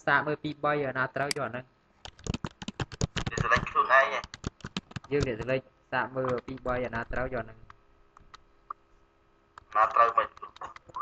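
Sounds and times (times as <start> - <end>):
person speaking: 0.0 - 8.9, 9.6 - 11.0
computer keyboard keystrokes: 2.0 - 5.6, 6.2 - 8.4, 9.6 - 11.0.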